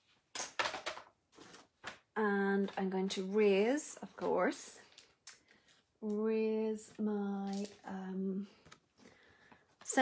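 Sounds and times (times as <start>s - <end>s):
rustling of craft supplies: 0.0s - 10.0s.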